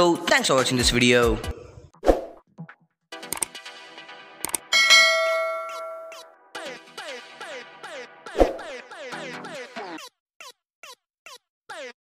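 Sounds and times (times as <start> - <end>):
bright bell chime: 4.7 - 6.2.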